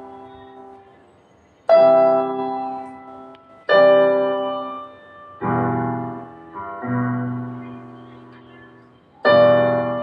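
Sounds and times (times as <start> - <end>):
electronic keyboard piano chords: 0.0 - 10.0.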